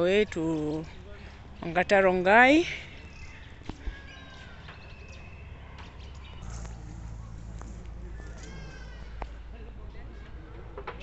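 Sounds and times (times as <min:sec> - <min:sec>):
distant voices: 0:00.0 - 0:11.0
thin bird calls: 0:02.8 - 0:10.2
low steady rumble: 0:06.1 - 0:09.6.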